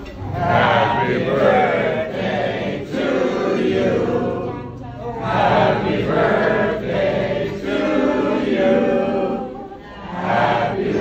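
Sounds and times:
group singing a cappella: 0.0s - 11.0s.

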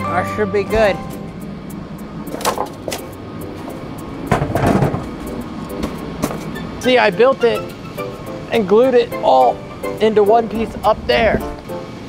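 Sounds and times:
handling knocks and clunks: 2.3s - 6.6s.

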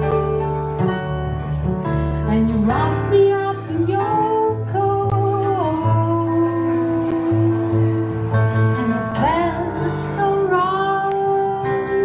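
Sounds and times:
woman singing jazz: 0.0s - 1.2s, 2.2s - 12.0s.

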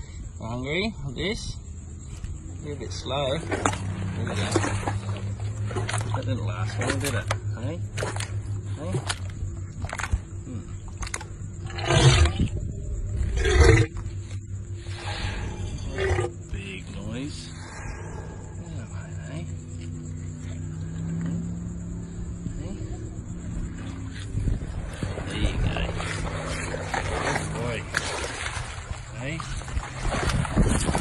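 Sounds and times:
steady low hum: 0.0s - 31.0s
crocodile rough bursts: 11.6s - 12.6s, 14.8s - 16.4s.

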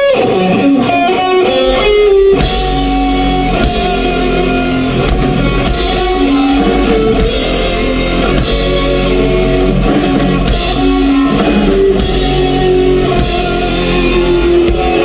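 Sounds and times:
live metal band playing: 0.0s - 15.0s.

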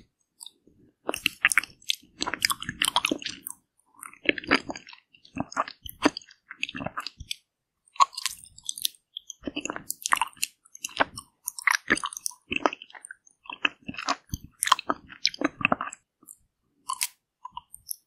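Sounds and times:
biting and chewing ice cream bar: 0.3s - 18.0s.

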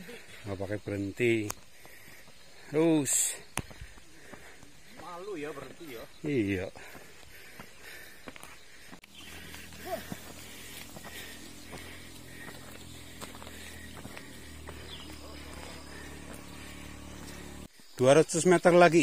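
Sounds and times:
footsteps on asphalt road: 1.4s - 2.7s, 3.3s - 17.7s
steady low hum: 8.8s - 17.7s.

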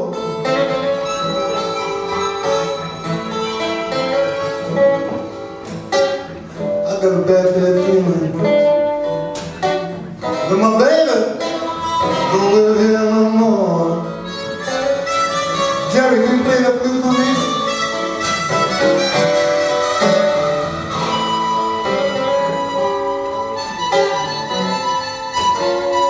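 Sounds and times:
acoustic guitar accompaniment: 0.0s - 26.0s
blues harmonica solo: 0.2s - 6.7s, 11.4s - 12.5s, 14.0s - 26.0s.

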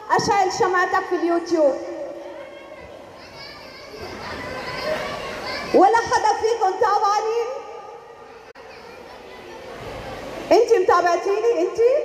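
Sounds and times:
children chattering in audience: 2.0s - 6.0s, 7.6s - 10.5s.

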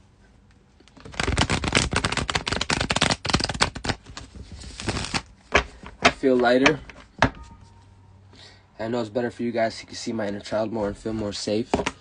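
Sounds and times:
cards being shuffled: 0.9s - 7.0s.

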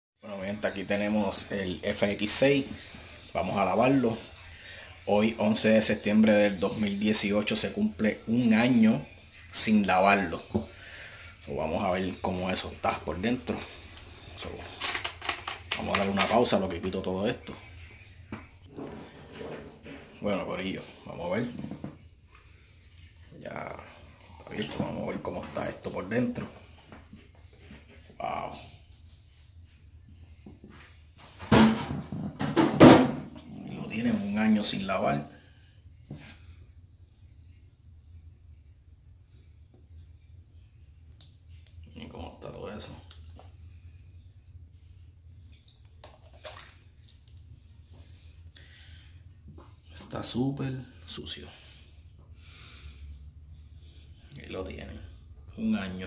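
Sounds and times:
water sloshing and dripping: 43.0s - 48.5s
water splashing: 45.4s - 47.5s.

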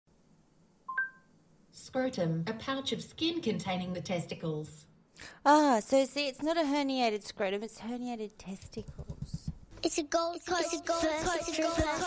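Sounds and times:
two-tone electronic beep: 0.9s - 1.3s.

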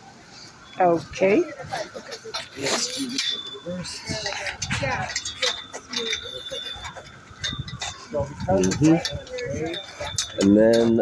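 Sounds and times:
metal clamp clicking and clinking: 4.2s - 10.9s.

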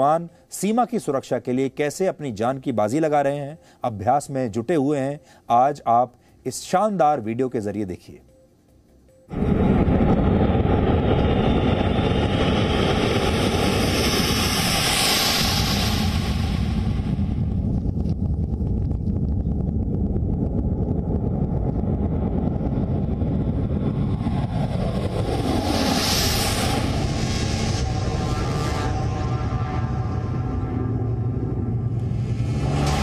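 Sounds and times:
high engine whine: 8.4s - 33.0s
jet engines roaring: 9.3s - 33.0s.

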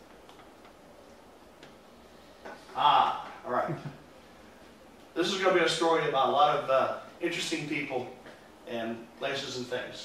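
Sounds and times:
faint irregular clicks: 0.0s - 1.8s.

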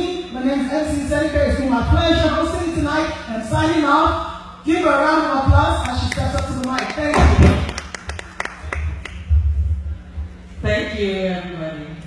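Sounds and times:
scattered hand claps: 5.8s - 9.3s.

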